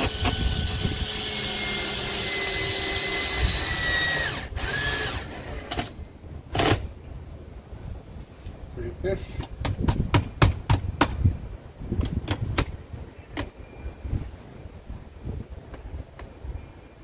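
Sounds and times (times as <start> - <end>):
cordless drill driving screw: 0.0 - 5.9.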